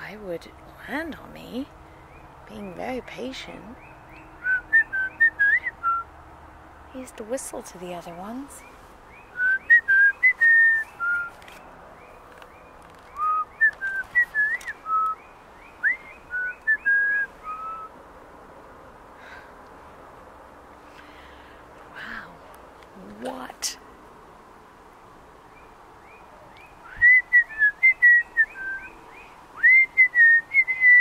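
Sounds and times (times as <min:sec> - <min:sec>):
woman whistling a tune: 0:04.4 - 0:06.0, 0:09.4 - 0:11.4, 0:15.8 - 0:17.9, 0:26.9 - 0:28.9, 0:29.6 - 0:31.0.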